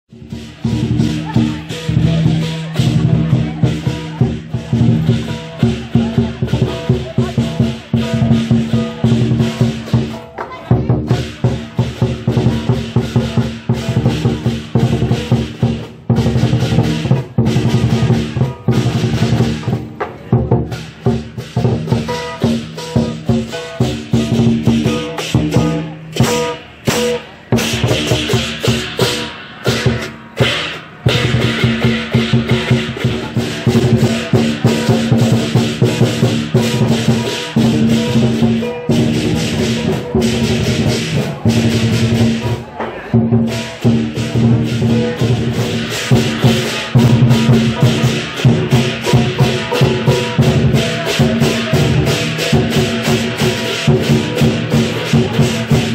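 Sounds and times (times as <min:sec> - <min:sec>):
crashing hand cymbals: 0:00.1 - 0:55.9
large drum fast rhythm: 0:00.1 - 0:55.9.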